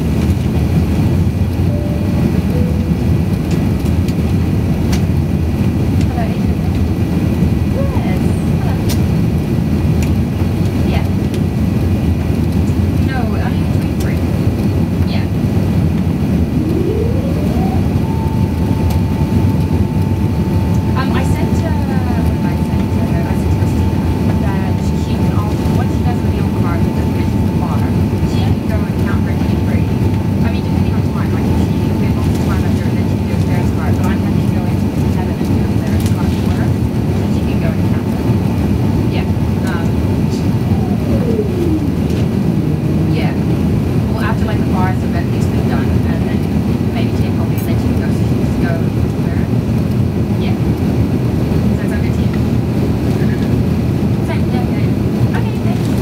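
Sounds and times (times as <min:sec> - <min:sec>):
airplane engines and airflow rumble: 0:00.0 - 0:56.0
mechanical whine: 0:15.8 - 0:45.2.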